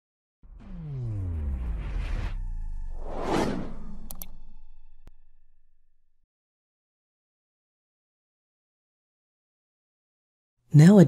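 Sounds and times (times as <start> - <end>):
whoosh: 0.4 - 5.4
low rumble: 0.4 - 6.2.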